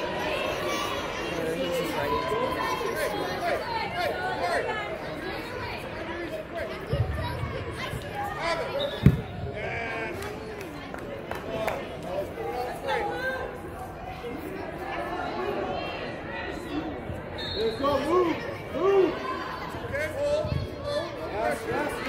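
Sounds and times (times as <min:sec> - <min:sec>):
voices chattering: 0:00.0 - 0:22.0
ball kicked hard thump: 0:09.0 - 0:09.3.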